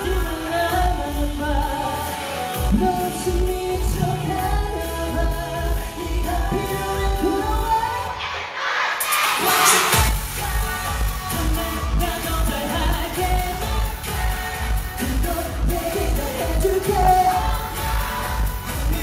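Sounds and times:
pop dance track over sound system: 0.0s - 19.0s
singing: 0.0s - 19.0s.

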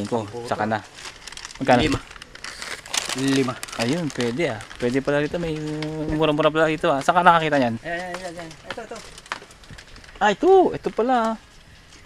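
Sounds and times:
packaging crinkling: 0.0s - 12.0s.

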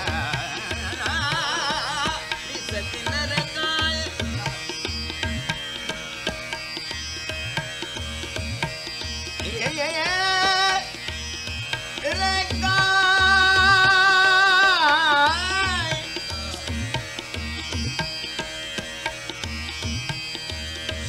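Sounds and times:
man singing classical vocals: 0.0s - 4.7s, 9.4s - 11.0s, 12.0s - 16.2s
tabla strokes: 0.0s - 21.0s.

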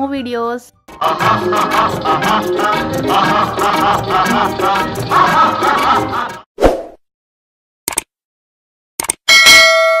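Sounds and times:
quick clicks: 7.9s - 8.1s, 9.0s - 9.2s
bright bell ding: 9.3s - 10.0s.

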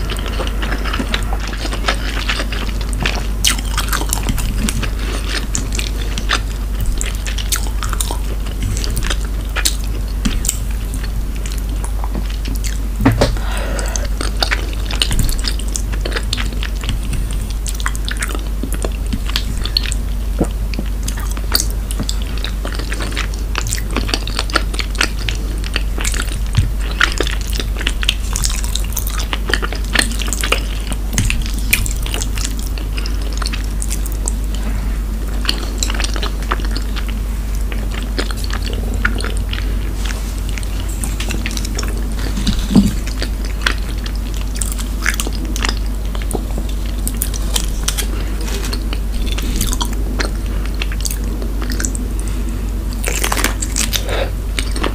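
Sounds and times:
chewing with wet mouth clicks: 0.0s - 54.9s
steady low hum: 0.0s - 54.9s.

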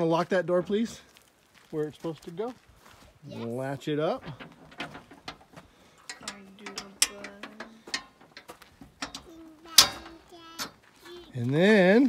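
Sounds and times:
metal door latch clicking and rattling: 4.2s - 10.8s.

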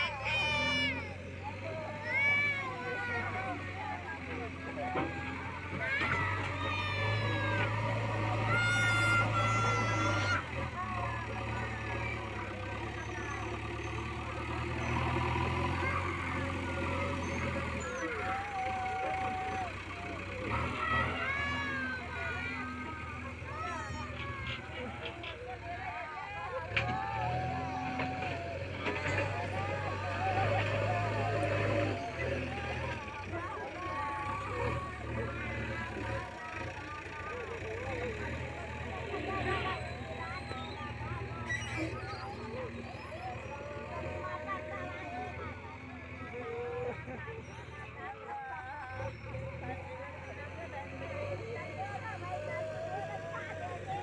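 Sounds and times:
diesel engine running: 0.0s - 54.0s
loader bucket pushing soil: 1.4s - 46.6s.

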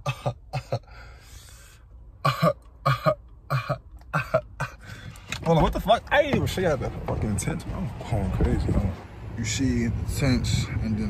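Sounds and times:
man laughing: 0.0s - 1.0s, 2.3s - 4.8s.

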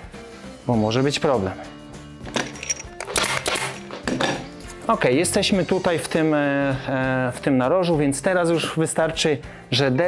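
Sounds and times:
staple gun firing: 3.0s - 3.8s.

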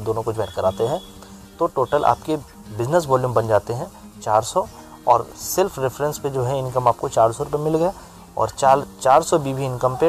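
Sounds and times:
man speaking: 1.6s - 10.0s.

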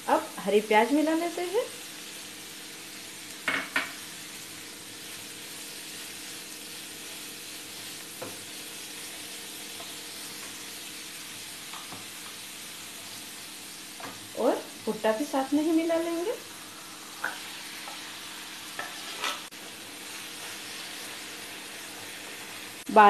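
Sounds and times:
food sizzling in a frying pan: 0.0s - 23.0s.

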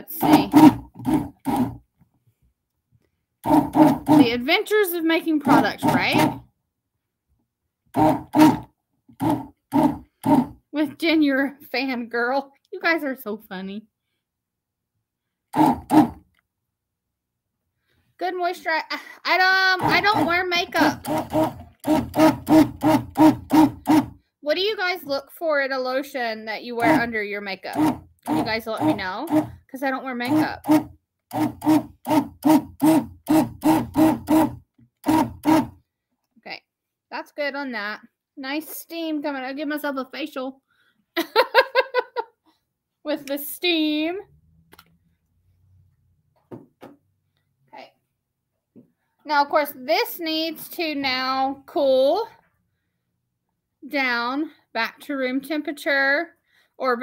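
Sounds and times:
stick blender pulsing: 0.0s - 1.8s, 3.4s - 4.6s, 5.4s - 6.4s, 8.0s - 10.6s, 15.6s - 16.2s, 19.4s - 24.2s, 26.8s - 35.8s
woman laughing: 41.2s - 42.4s.

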